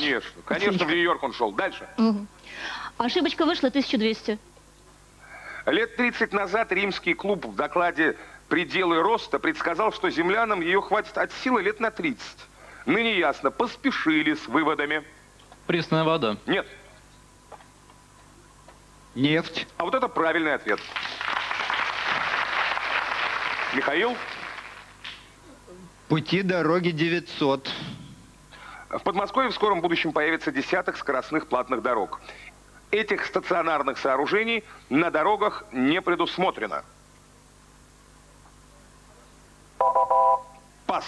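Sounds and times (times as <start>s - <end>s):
audience applauding: 20.8s - 25.2s
two-pulse electronic chime: 39.8s - 40.6s.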